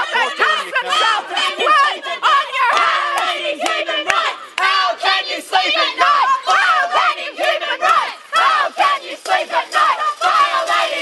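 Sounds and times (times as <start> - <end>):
crowd shouting: 0.0 - 11.0
hand claps: 2.7 - 4.8.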